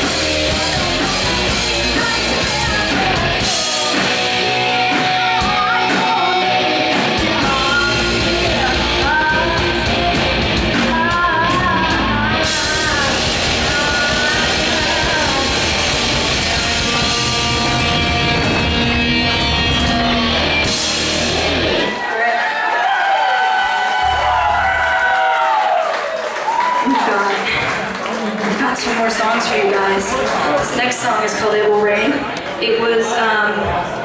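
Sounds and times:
woman singing: 0:00.0 - 0:18.5
live rock band playing: 0:00.0 - 0:22.1.

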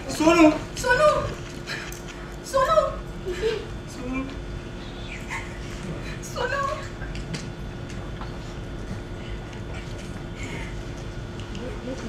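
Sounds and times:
woman crying and wailing: 0:00.3 - 0:01.4, 0:02.5 - 0:03.8.

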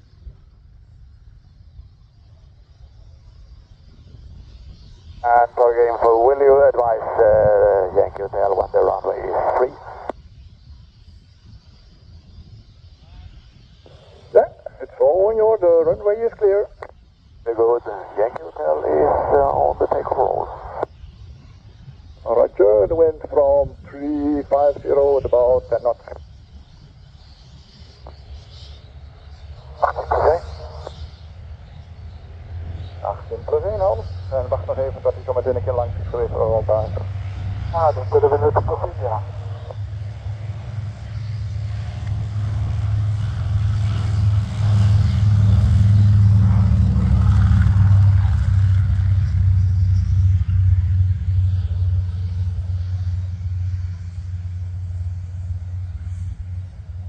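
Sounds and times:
radial aircraft engine rumble: 0:00.0 - 0:57.0.

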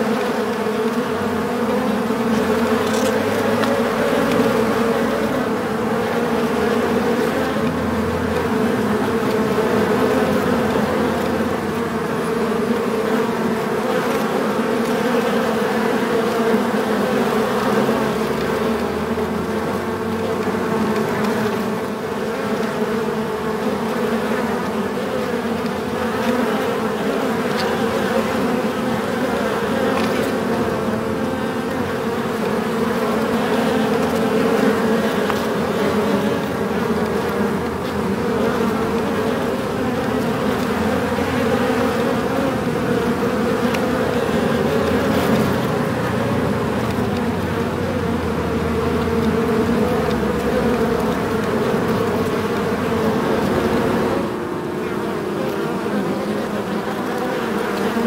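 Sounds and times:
bees buzzing in a hive: 0:00.0 - 0:58.0.

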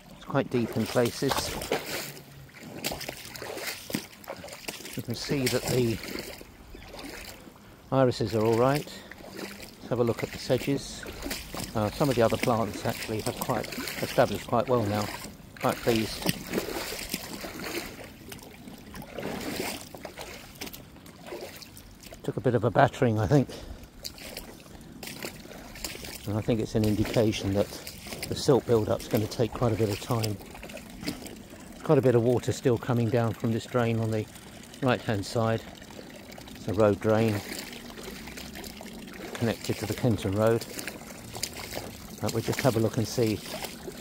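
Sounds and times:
brook water trickling: 0:00.0 - 0:44.0
footsteps on wet bank: 0:00.0 - 0:44.0.

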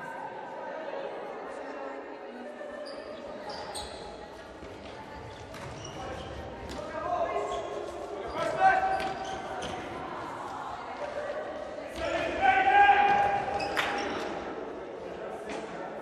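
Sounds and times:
players shouting: 0:11.8 - 0:14.3.

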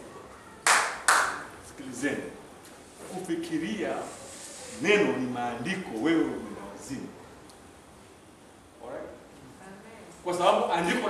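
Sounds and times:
sharp hand claps: 0:00.6 - 0:01.5.

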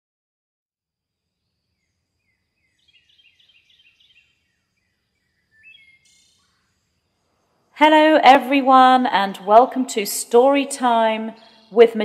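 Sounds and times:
faint bird-like chirping: 0:01.5 - 0:07.8, 0:11.2 - 0:11.9.

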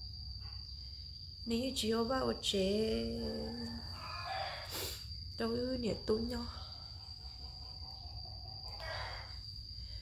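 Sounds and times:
high-pitched insect tone: 0:00.0 - 0:10.0
woman talking: 0:01.4 - 0:04.0, 0:05.4 - 0:06.8.

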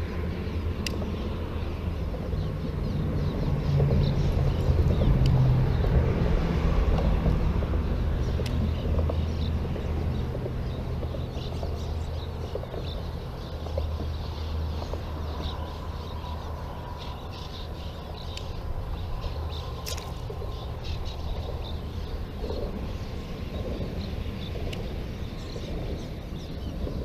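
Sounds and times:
swallows twittering: 0:00.0 - 0:05.9, 0:07.0 - 0:27.0
steady low rumble: 0:00.0 - 0:27.0.

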